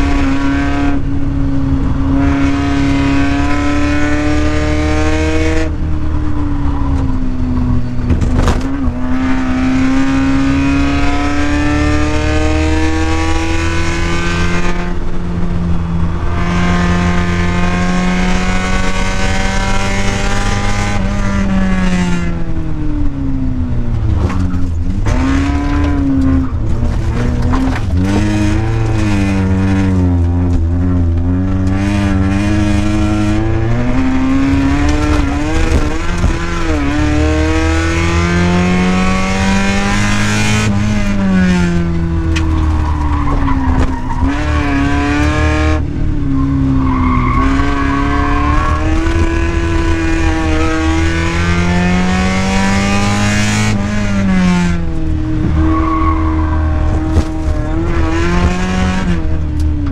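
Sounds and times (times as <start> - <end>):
car engine revving: 0.0 - 59.9
tyre noise: 23.8 - 59.9.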